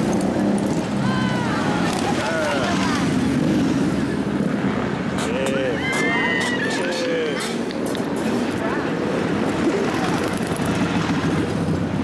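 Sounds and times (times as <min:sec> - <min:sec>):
motorcycles riding past: 0:00.0 - 0:12.0.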